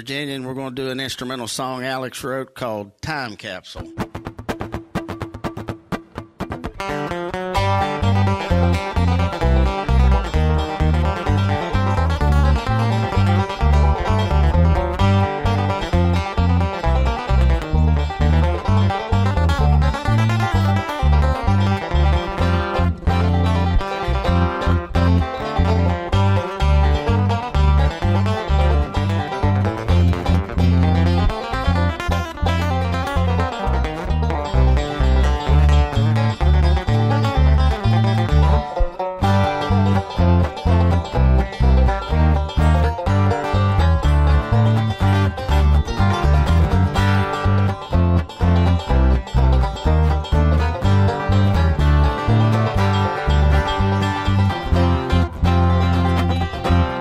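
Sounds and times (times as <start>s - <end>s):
quick banjo picking: 0.0s - 57.0s
instrumental bluegrass band: 3.7s - 57.0s
steady bass line: 6.8s - 57.0s.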